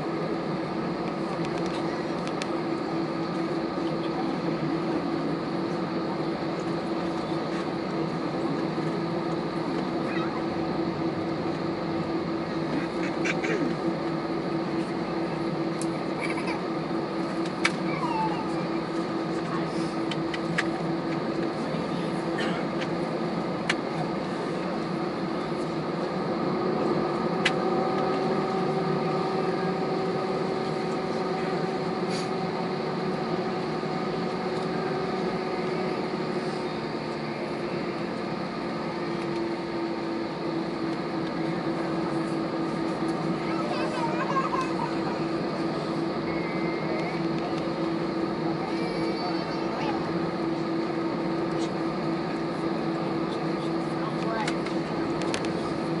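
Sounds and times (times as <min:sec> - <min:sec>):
aircraft engines humming: 0:00.0 - 0:56.0
constant droning tone: 0:00.0 - 0:56.0.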